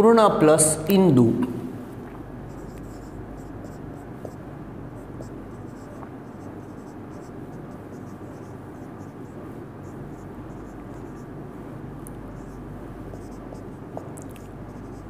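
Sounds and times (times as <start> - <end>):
low background hum: 0.0 - 15.0
marker scratching on whiteboard: 2.5 - 11.4, 12.3 - 15.0.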